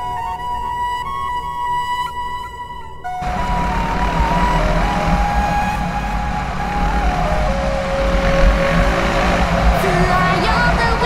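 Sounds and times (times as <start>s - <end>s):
music playing: 0.0s - 11.0s
motorcycle engine running: 3.2s - 11.0s
wind noise on helmet: 3.2s - 11.0s.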